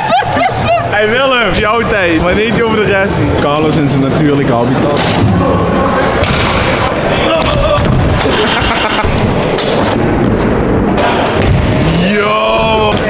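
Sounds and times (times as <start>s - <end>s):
background chatter of people: 0.0s - 13.0s.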